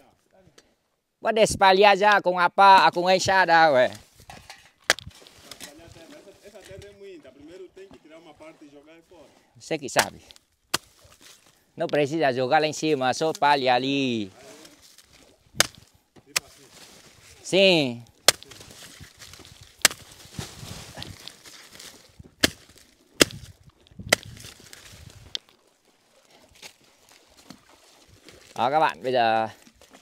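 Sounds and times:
machete chopping banana trunks: 0:04.8 - 0:05.8, 0:09.9 - 0:11.4, 0:15.5 - 0:16.6, 0:18.2 - 0:24.8.

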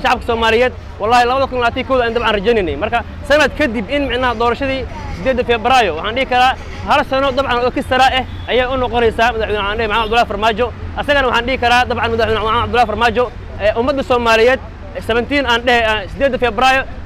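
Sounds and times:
man talking: 0:00.0 - 0:17.0
street noise hum: 0:00.0 - 0:17.0.

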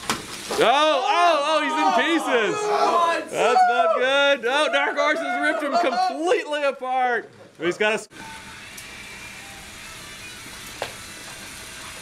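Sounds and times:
room background noise: 0:00.0 - 0:12.0.

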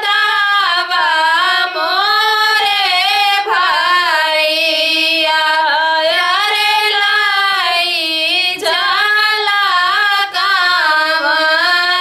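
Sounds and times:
women singing unaccompanied: 0:00.0 - 0:12.0.

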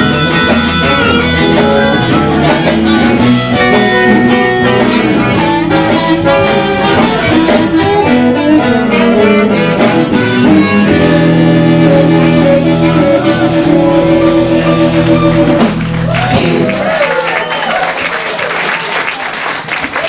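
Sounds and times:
harmonica through microphone: 0:00.0 - 0:15.8
live blues band playing: 0:00.0 - 0:17.9.

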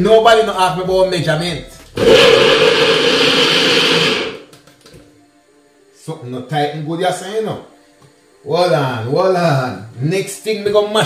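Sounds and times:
blender motor running: 0:02.0 - 0:04.5.

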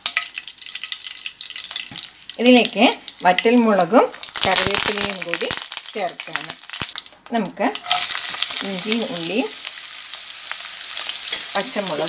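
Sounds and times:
seeds sizzling in hot oil: 0:00.0 - 0:12.0
crackles and pops: 0:04.2 - 0:09.8.

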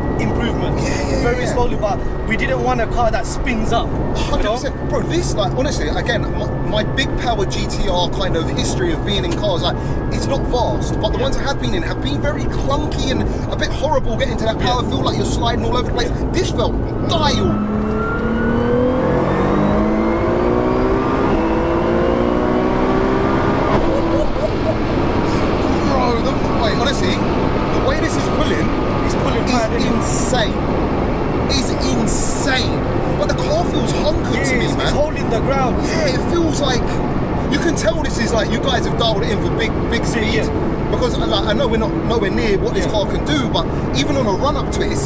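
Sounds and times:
people talking: 0:00.0 - 0:17.6, 0:23.7 - 0:30.6, 0:31.5 - 0:45.0
car engine accelerating hard: 0:00.0 - 0:45.0
road noise: 0:00.0 - 0:45.0.

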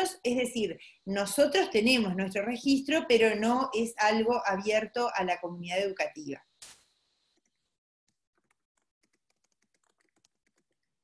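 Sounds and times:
keyboard typing: 0:07.5 - 0:11.0.

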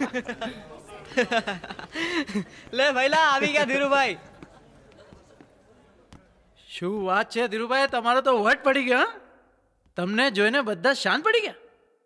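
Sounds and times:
man talking: 0:02.7 - 0:04.3.

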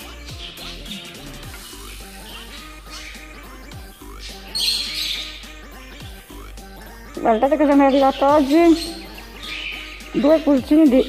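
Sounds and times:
chicken squawking: 0:00.0 - 0:06.2, 0:06.8 - 0:11.0
background music with steady beat: 0:00.0 - 0:11.0.

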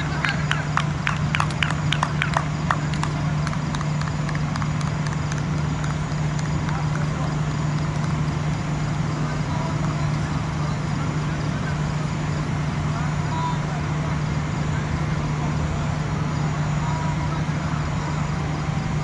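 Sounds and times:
hand claps: 0:00.0 - 0:08.2
steady low hum: 0:00.0 - 0:19.0.

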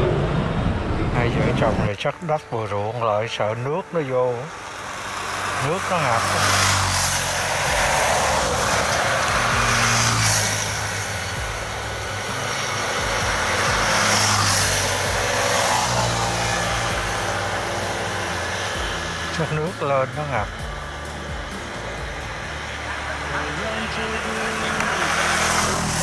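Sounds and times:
low engine hum: 0:00.0 - 0:26.0
road traffic passing: 0:00.0 - 0:26.0.

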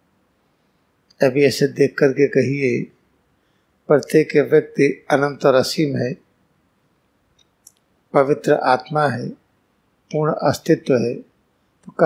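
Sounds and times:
man speaking: 0:01.2 - 0:02.9, 0:03.9 - 0:06.2, 0:08.2 - 0:09.4, 0:10.1 - 0:11.2.

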